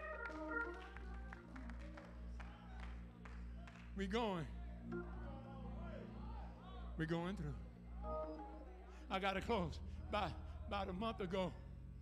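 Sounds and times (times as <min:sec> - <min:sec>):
church organ bass notes: 0:00.0 - 0:01.4, 0:04.8 - 0:12.0.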